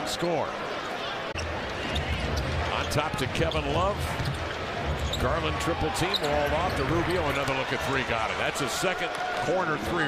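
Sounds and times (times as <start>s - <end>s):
crowd rumble: 1.4s - 8.0s.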